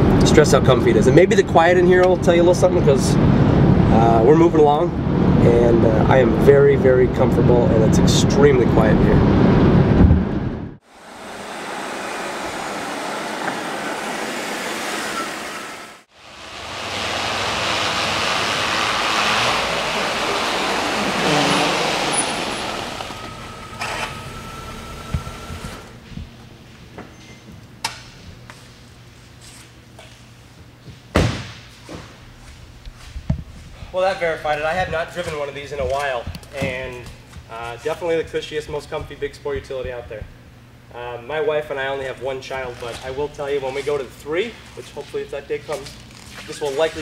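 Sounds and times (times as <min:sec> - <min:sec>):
road and wind noise in car: 0:02.0 - 0:26.4
car driving past: 0:11.0 - 0:25.0
sharp thud: 0:31.1 - 0:31.7.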